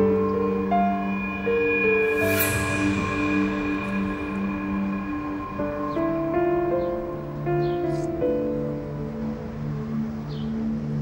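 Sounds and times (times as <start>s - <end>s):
soft sustained background music: 0.0s - 11.0s.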